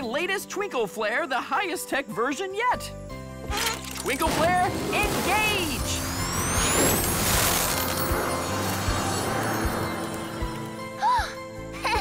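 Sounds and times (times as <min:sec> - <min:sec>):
background music: 0:00.0 - 0:12.0
cartoon firework whistle and burst: 0:05.4 - 0:08.6.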